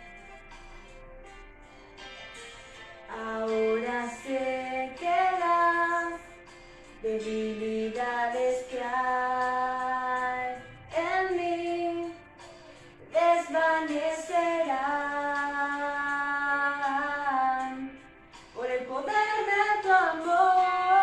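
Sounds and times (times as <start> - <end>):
woman singing slow worship song: 3.1 - 21.0.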